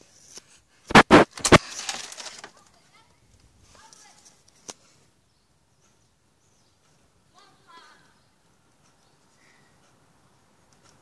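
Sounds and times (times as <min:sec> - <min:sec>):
short rush of noise: 0:00.9 - 0:01.6
loud sharp bursts: 0:00.9 - 0:01.7.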